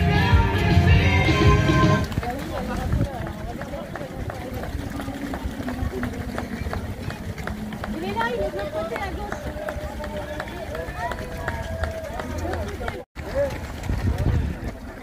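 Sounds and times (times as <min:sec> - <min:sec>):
runners' footsteps on wet asphalt: 0:01.8 - 0:15.0.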